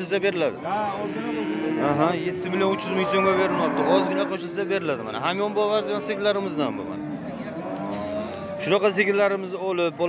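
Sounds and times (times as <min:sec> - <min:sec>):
cattle mooing: 0:00.6 - 0:08.8.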